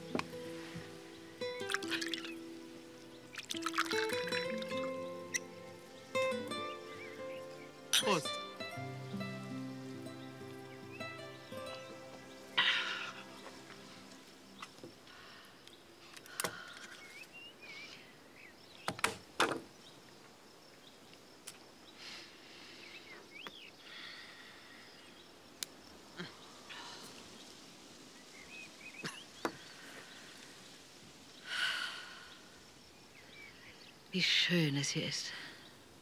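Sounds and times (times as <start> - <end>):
bird chirps: 0.0 - 14.8.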